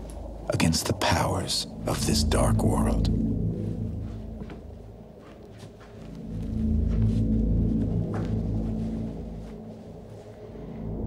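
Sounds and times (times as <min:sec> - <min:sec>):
low film score drone: 0:00.0 - 0:11.0.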